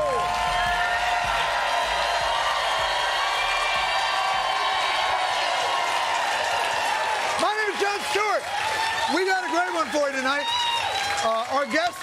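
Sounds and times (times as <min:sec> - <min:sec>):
audience cheering and applauding: 0:00.0 - 0:12.0.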